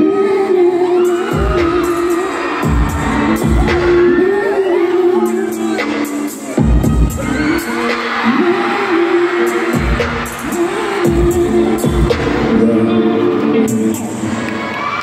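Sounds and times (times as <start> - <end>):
crowd noise: 0.0 - 15.0
live pop music: 0.0 - 15.0
deep bass drum booms: 2.7 - 4.0.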